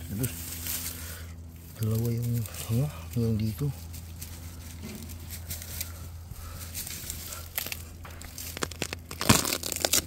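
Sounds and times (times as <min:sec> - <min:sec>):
gritty crunching of digging soil: 0:00.0 - 0:10.0.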